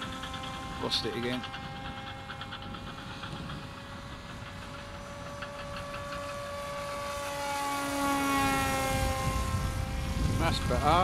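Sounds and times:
electric motor and propeller whining: 0.0s - 11.0s.

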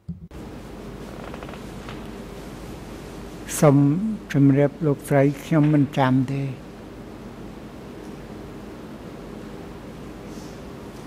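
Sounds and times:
open microphone hiss and hum: 0.0s - 11.0s.

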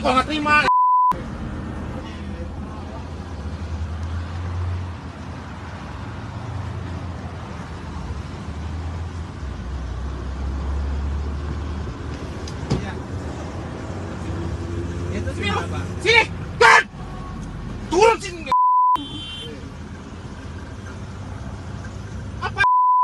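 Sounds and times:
road traffic: 0.0s - 23.0s.

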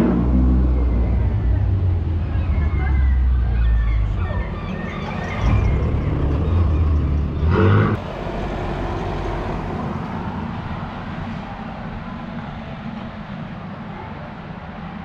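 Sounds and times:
car driving past: 0.0s - 13.4s
street background: 0.0s - 15.0s.

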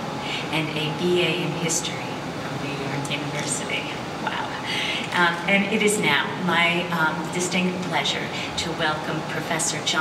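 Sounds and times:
steady room noise hiss: 0.0s - 10.0s
woman speaking into a microphone: 0.3s - 10.0s.

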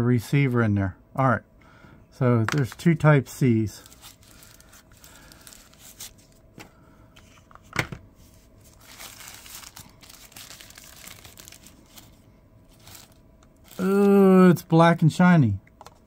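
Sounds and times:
plastic wrap crinkling and tearing: 3.8s - 6.4s, 8.6s - 14.2s.

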